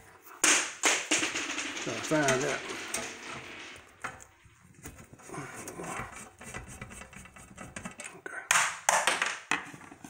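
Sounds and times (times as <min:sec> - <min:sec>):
screwdriver scraping metal: 0:05.6 - 0:07.9.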